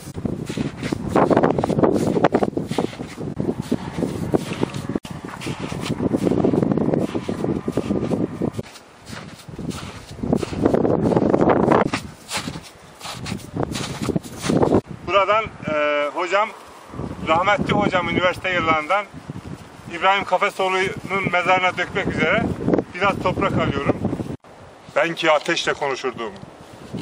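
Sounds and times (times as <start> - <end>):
footsteps crunching through snow: 0.0 - 14.8
wind buffeting microphone: 0.0 - 27.0.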